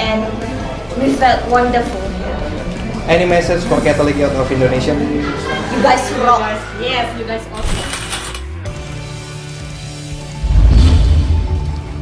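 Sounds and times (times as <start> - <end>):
gears and ratchet clicking: 7.6 - 8.5.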